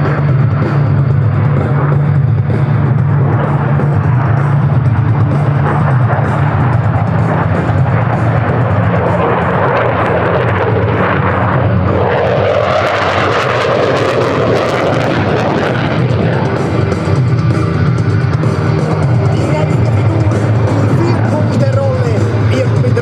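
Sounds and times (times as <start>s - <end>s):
jet engine roar: 0.0s - 23.0s
music: 0.0s - 23.0s.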